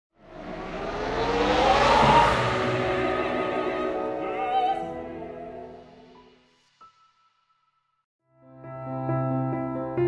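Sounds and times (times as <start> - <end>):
car engine revving: 0.2 - 5.6.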